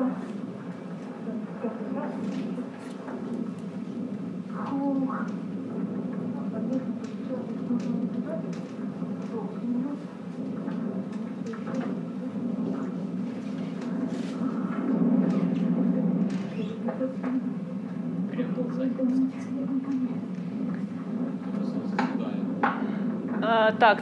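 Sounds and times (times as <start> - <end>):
muffled woman's voice: 0.0 - 3.1, 6.2 - 13.2, 13.9 - 18.0, 18.6 - 20.7, 23.4 - 24.0
steady rushing noise: 0.0 - 24.0.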